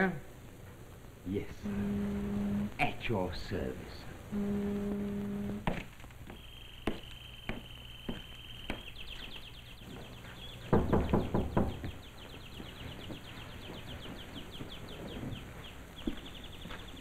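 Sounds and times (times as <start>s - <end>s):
sharp taps: 5.6s - 9.4s
songbird singing: 6.3s - 17.0s
loud knocks: 10.7s - 12.0s.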